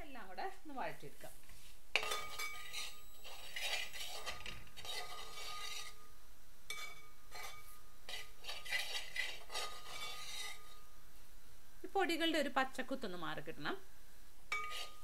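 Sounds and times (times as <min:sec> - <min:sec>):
steel spoon scraping a pan: 0:01.5 - 0:11.0, 0:14.5 - 0:15.0.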